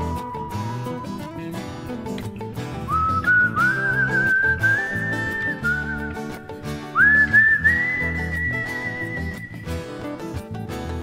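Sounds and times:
man whistling a melody: 0.0 - 2.1, 2.7 - 10.2
acoustic guitar strumming: 0.0 - 11.0.

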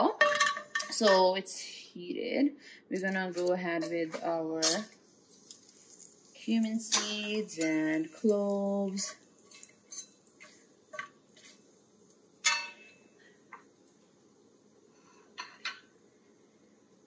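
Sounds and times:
metal spatula clinking on saucepan: 6.9 - 7.9, 12.4 - 13.0.

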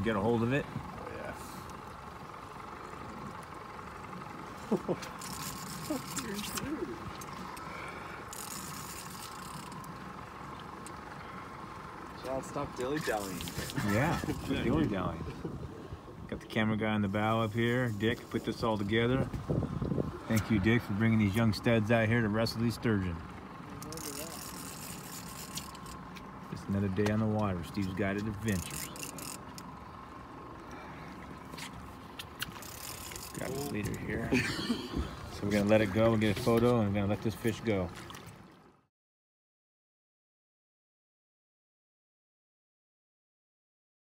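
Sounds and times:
boat rumble and hiss: 0.0 - 38.7
man laughing: 4.6 - 5.2, 13.6 - 15.4, 34.2 - 35.2.

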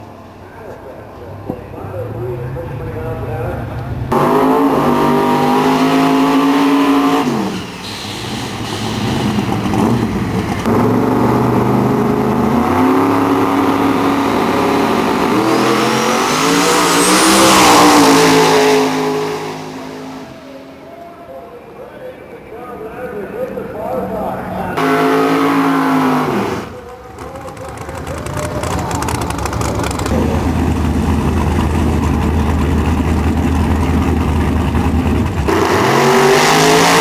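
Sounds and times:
drag racing car engine revving: 3.9 - 20.8, 24.5 - 37.0.

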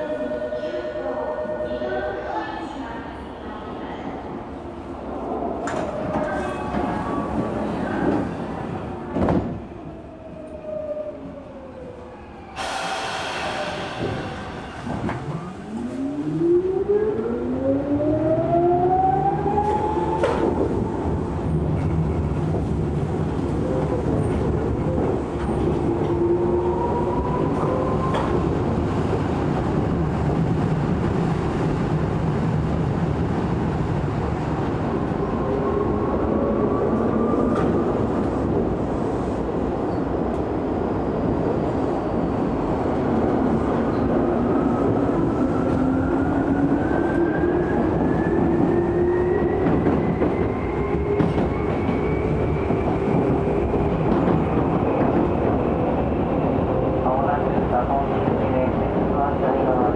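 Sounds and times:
wheels rumbling on rail: 12.6 - 59.9.

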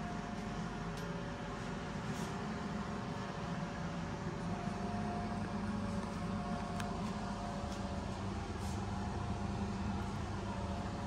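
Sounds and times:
mechanical hum and hiss: 0.0 - 11.0.

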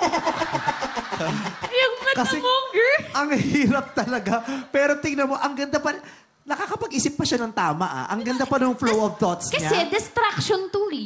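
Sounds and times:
people talking: 1.2 - 5.9, 6.5 - 11.0.

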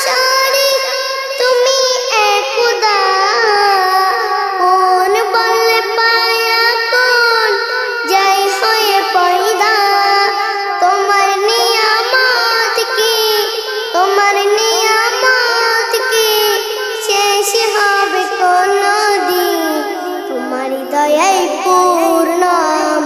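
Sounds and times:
child singing: 0.0 - 23.0.

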